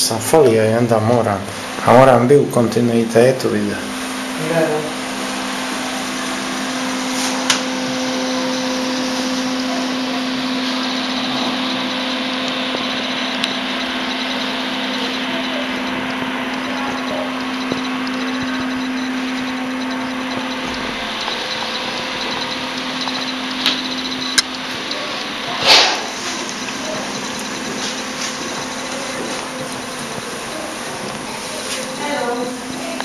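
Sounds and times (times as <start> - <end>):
motor whirring with low hum: 0.0 - 33.0.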